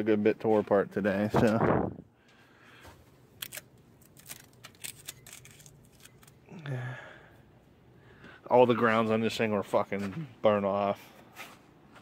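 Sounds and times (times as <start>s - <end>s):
handling clicks and rattles: 3.4s - 6.4s.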